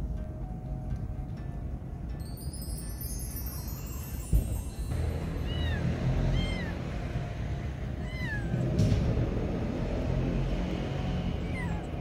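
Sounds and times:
cat meowing: 0:05.2 - 0:06.9, 0:07.9 - 0:08.8, 0:11.4 - 0:12.0.

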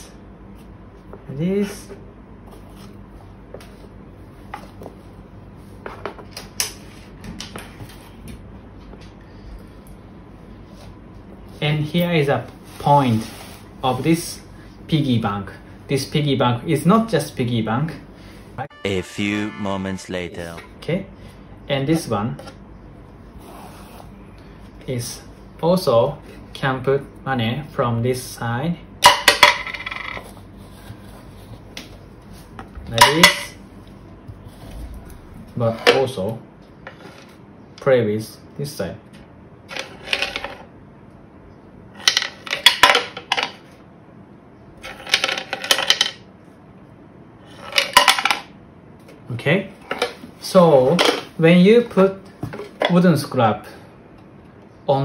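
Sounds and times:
man speaking: 0:18.6 - 0:20.9
coins clattering down wooden toy bank: 0:39.7 - 0:40.6, 0:44.9 - 0:46.2.

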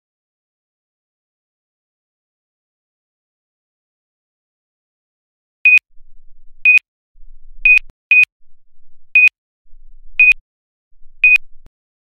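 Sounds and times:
keypad beeps: 0:06.6 - 0:06.8, 0:07.6 - 0:08.3, 0:10.2 - 0:10.4, 0:11.2 - 0:11.5.

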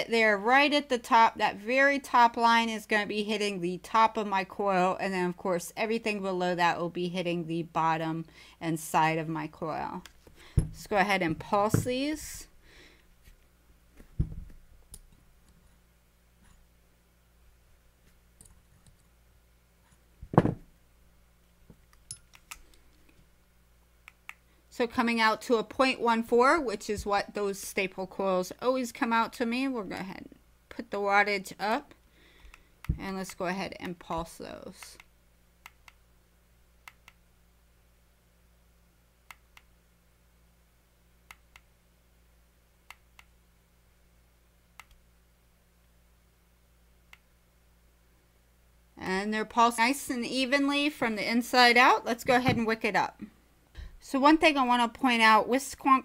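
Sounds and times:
dull handling thump: 0:10.6 - 0:10.8, 0:14.2 - 0:14.6, 0:20.2 - 0:20.7
metal tool clicks and taps: 0:21.9 - 0:22.7.

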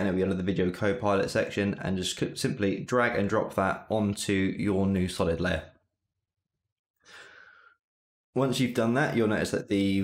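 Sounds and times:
person breathing: 0:07.0 - 0:07.8.

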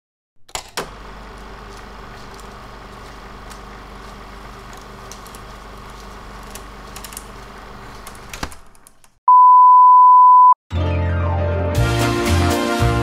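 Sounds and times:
electronic beep tone: 0:09.3 - 0:10.6
music with bass and sweep: 0:10.8 - 0:13.0.

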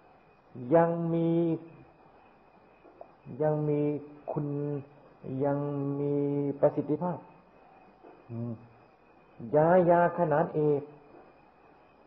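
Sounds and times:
man preaching slowly: 0:03.3 - 0:07.2, 0:09.4 - 0:10.9.

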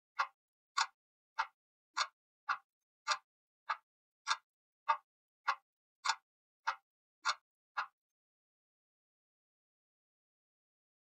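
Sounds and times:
clock ticking: 0:00.2 - 0:08.0.

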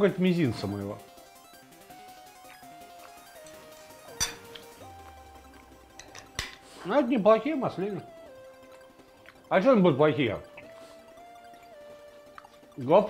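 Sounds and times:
soft background music: 0:00.0 - 0:13.0
fork clinking against plate: 0:04.2 - 0:04.7.

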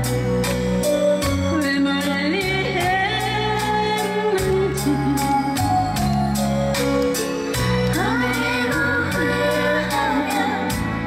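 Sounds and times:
band with bass and drums: 0:00.0 - 0:11.0
woman singing: 0:01.4 - 0:05.7, 0:07.8 - 0:11.0.

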